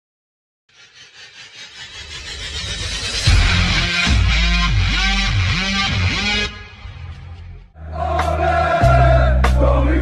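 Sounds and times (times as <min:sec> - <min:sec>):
pulsing noise swell: 0:00.7 - 0:04.4
rock music: 0:03.1 - 0:10.0.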